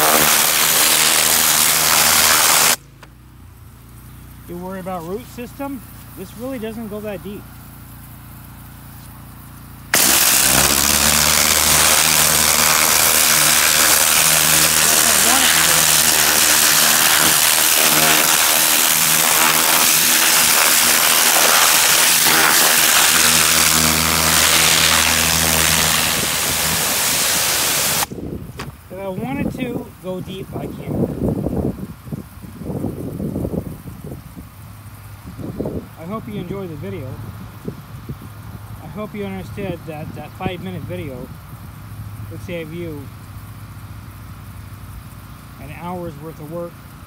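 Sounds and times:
water jet hissing into soil: 0:00.0 - 0:03.0, 0:04.8 - 0:28.1.

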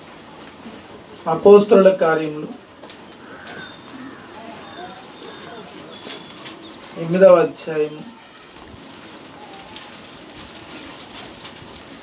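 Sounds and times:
paper pages being turned: 0:02.8 - 0:12.0.

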